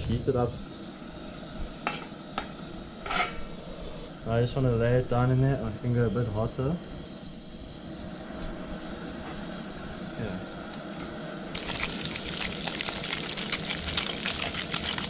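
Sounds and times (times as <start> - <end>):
fish frying in butter: 11.6 - 15.0.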